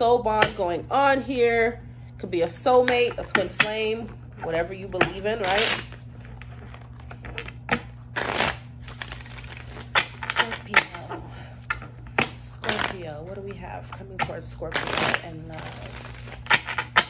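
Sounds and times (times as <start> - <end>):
cards being shuffled: 5.4 - 13.4, 14.7 - 17.0.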